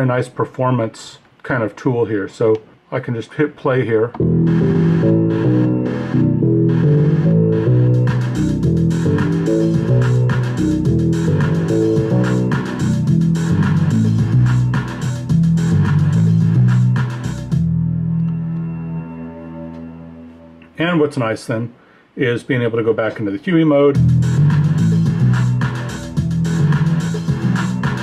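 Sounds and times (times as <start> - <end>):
electronic drum hits: 4.2 - 15.0
synth bass line: 4.2 - 20.8, 24.0 - 28.0.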